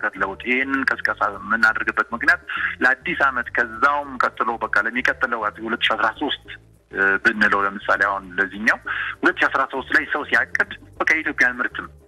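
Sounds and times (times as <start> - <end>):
faint music bed: 0.0 - 12.0
radio presenter talking: 0.0 - 12.0.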